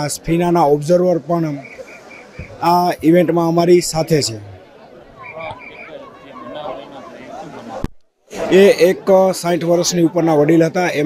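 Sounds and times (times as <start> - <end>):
man speaking: 0.0 - 1.6, 2.6 - 4.5, 8.5 - 11.0
crowd talking in background: 0.0 - 11.0.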